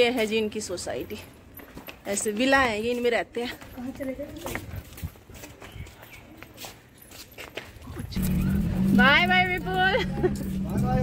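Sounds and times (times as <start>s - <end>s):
low car rumble: 7.9s - 11.0s.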